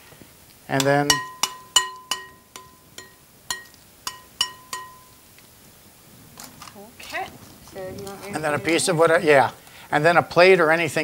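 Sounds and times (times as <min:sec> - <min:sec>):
spoon knocking glass bowl: 0:00.8 - 0:05.2
glass ringing bell-like: 0:01.1 - 0:05.2.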